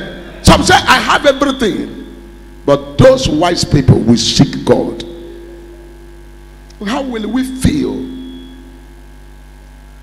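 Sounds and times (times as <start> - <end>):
low mains hum: 0.0 - 10.0.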